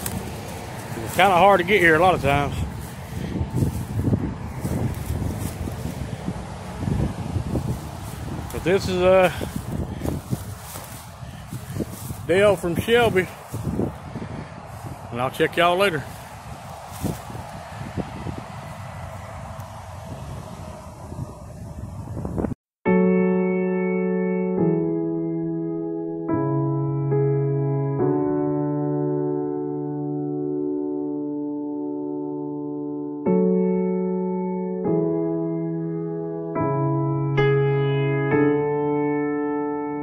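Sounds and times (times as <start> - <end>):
cars and trucks passing: 0.0 - 22.6
wind buffeting microphone: 0.0 - 22.6
electric piano music: 0.0 - 40.0
microphone handling bumps: 6.9 - 15.1.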